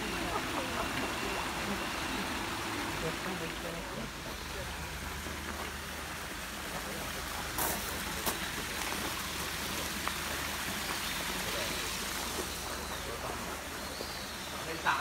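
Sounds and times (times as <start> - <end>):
fountain water splashing: 0.0 - 15.0.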